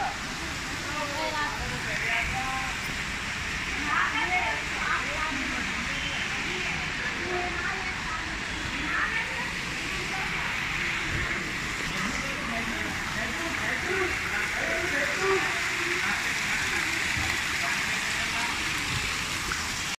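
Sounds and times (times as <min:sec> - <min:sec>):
people chattering: 0:00.0 - 0:02.9, 0:03.6 - 0:19.7
fountain splashing into pool: 0:00.0 - 0:19.9.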